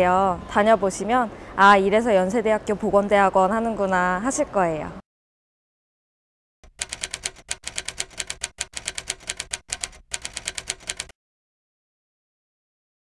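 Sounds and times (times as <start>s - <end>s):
typewriter keys clicking: 6.6s - 11.1s.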